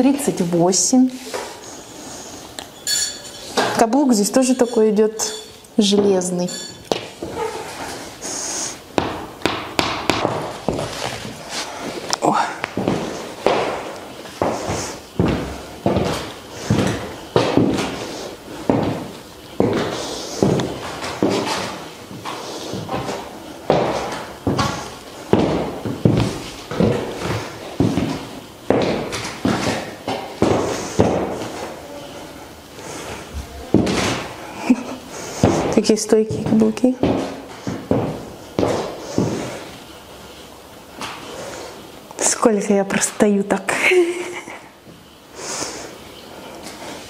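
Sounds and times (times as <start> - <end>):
high heels clicking on hard floor: 5.8 - 7.5, 9.0 - 11.4, 12.1 - 31.7, 33.4 - 34.8, 35.4 - 39.5.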